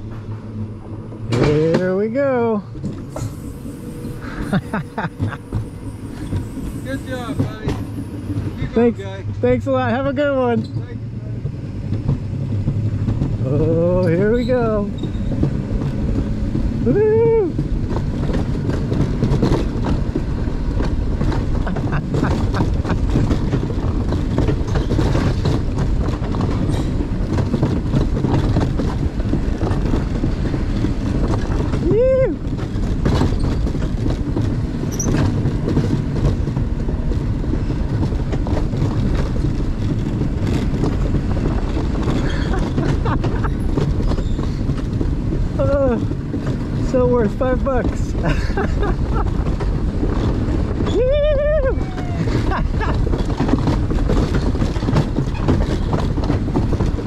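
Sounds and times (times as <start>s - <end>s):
coaster wheels rumbling on rails: 0.0s - 57.0s
person whooping: 16.9s - 17.6s, 31.8s - 32.4s, 50.9s - 52.6s.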